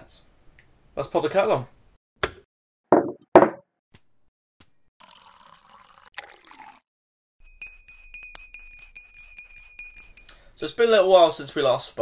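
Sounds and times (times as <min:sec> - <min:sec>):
water pouring into a mug: 0:05.0 - 0:06.9
teaspoon clinking against mug: 0:07.4 - 0:10.6.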